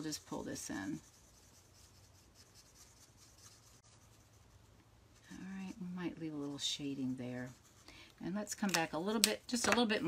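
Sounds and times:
felt marker scratching on cardstock: 0:00.0 - 0:04.6.

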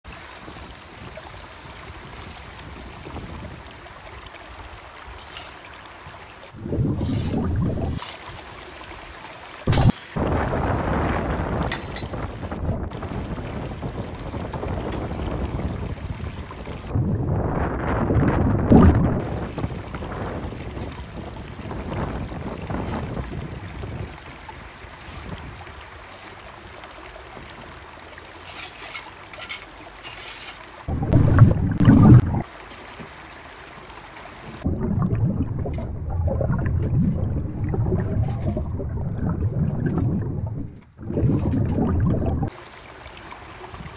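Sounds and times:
rushing sloshing water: 0:00.0 - 0:43.9
trowel scraping mortar on brick: 0:28.3 - 0:30.7.

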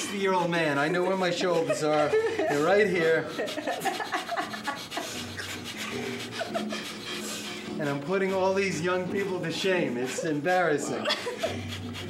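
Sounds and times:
people breathing forcefully through nose: 0:00.0 - 0:07.8, 0:11.2 - 0:12.0.

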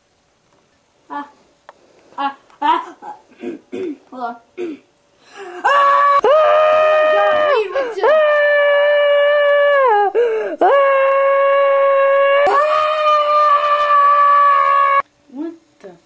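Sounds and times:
boy screaming: 0:05.6 - 0:15.0.

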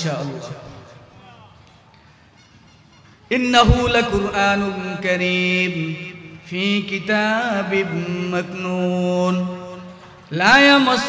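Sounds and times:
man reciting melodically: 0:00.0 - 0:01.6, 0:03.3 - 0:11.0.

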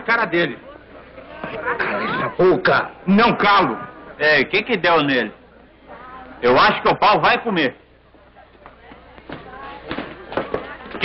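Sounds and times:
faint background voices: 0:00.5 - 0:03.1, 0:07.8 - 0:11.0.

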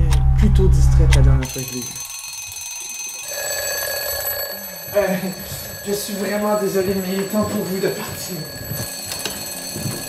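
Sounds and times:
alarm-like ringing: 0:00.2 - 0:10.0.

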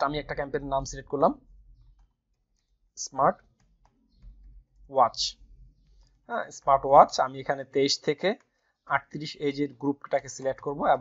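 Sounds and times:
faint typing on keyboard: 0:00.0 - 0:11.0.

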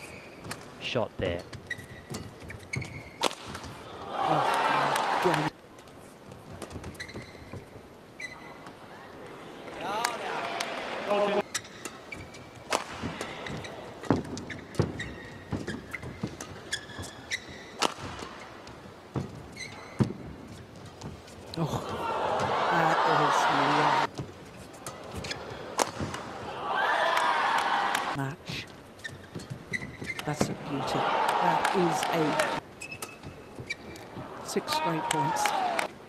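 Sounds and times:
shoe squeaks on court floor: 0:00.0 - 0:00.5, 0:01.5 - 0:03.2, 0:06.8 - 0:08.6, 0:11.4 - 0:12.6, 0:13.2 - 0:18.7, 0:19.5 - 0:20.2, 0:29.0 - 0:30.4, 0:32.7 - 0:34.0
crowd cheering: 0:03.8 - 0:05.5, 0:09.4 - 0:11.4, 0:21.5 - 0:24.1, 0:25.0 - 0:28.2, 0:30.6 - 0:32.6, 0:34.1 - 0:35.9
rackets striking shuttlecock: 0:11.6 - 0:18.4, 0:24.8 - 0:26.3.

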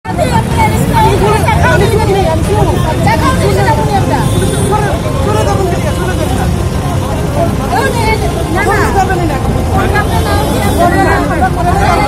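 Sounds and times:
people talking excitedly: 0:00.0 - 0:12.0.

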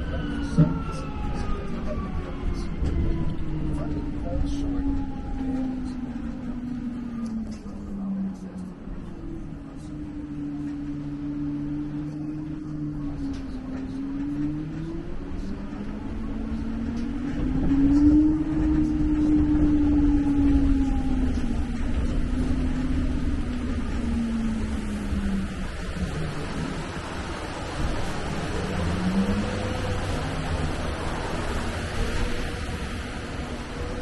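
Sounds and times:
tram engine rumble: 0:00.0 - 0:34.0.

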